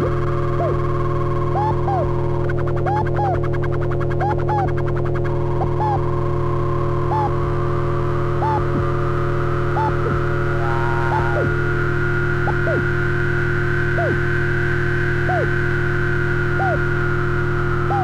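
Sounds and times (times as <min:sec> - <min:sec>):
synthesizer droning low tones: 0:00.0 - 0:18.0
synthesizer pitch chirps: 0:04.1 - 0:06.2, 0:07.0 - 0:07.4, 0:08.3 - 0:11.7, 0:12.3 - 0:13.0, 0:13.9 - 0:14.3, 0:15.1 - 0:15.6, 0:16.5 - 0:17.0
rising high tone: 0:07.0 - 0:07.5, 0:08.3 - 0:09.0, 0:09.6 - 0:13.1, 0:13.8 - 0:14.4, 0:15.0 - 0:18.0.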